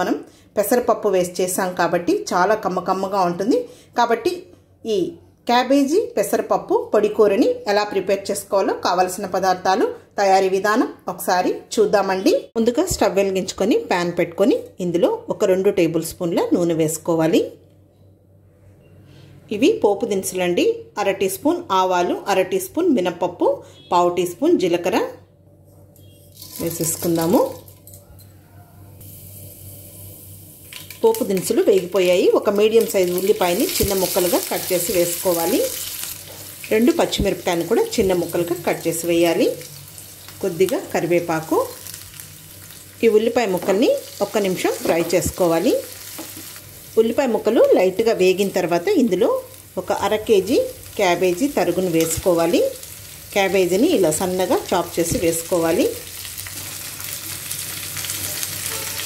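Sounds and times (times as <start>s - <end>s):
spices sizzling in hot oil: 26.3s - 28.0s, 29.0s - 59.0s.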